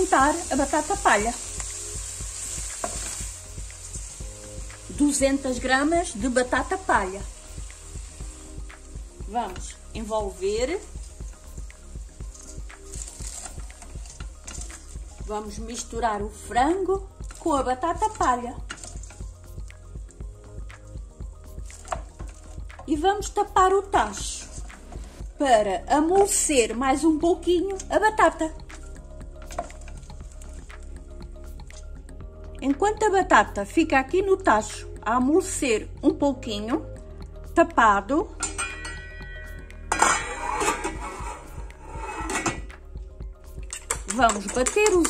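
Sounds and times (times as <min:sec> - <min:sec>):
soft background music: 0:00.0 - 0:45.0
wooden spoon stirring in pot: 0:00.1 - 0:19.9, 0:20.5 - 0:26.5
metal lid clinking on pot rim: 0:38.4 - 0:41.4.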